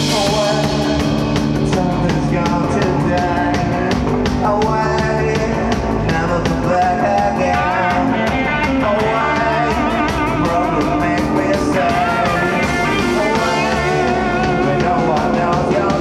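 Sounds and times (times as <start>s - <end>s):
bass guitar: 0.0s - 16.0s
distorted electric guitars: 0.0s - 16.0s
drum kit with cymbals: 0.0s - 16.0s
lead vocal singing: 0.0s - 16.0s.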